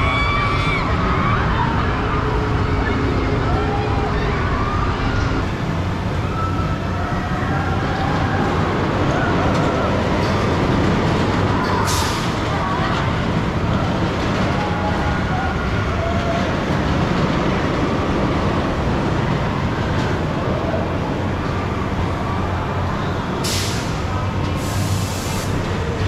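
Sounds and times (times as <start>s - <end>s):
ride machinery rumble: 0.0s - 26.0s
voices: 0.0s - 26.0s.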